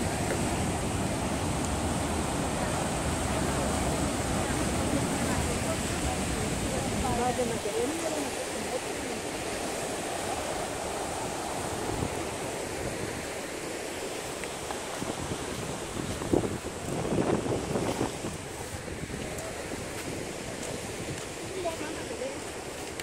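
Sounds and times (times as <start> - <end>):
ocean surf against rocks: 0.0 - 23.0
wind on microphone: 0.0 - 23.0.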